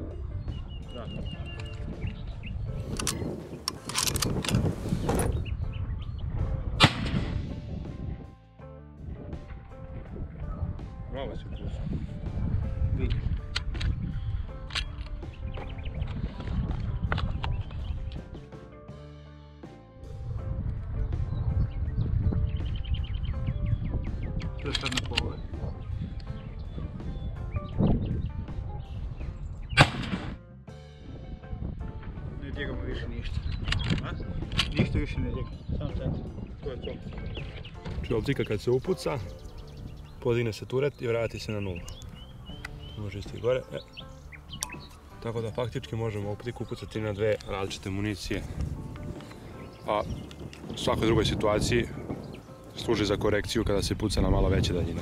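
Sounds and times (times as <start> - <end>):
rifle scope turret clicks: 2.8 - 5.3, 13.4 - 14.0, 14.6 - 15.2, 24.7 - 25.3, 33.5 - 34.8
rifle shot: 6.8 - 7.5, 29.8 - 30.4.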